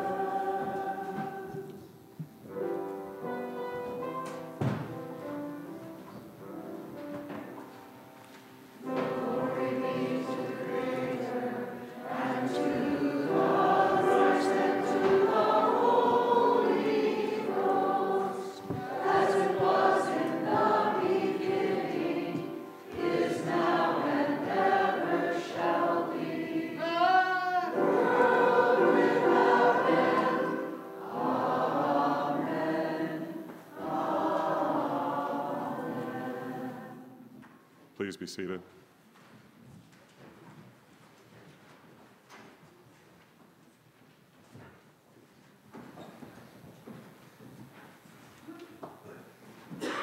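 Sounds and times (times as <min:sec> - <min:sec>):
congregation singing a hymn: 0:00.0 - 0:08.0, 0:08.7 - 0:37.4, 0:49.3 - 0:50.0.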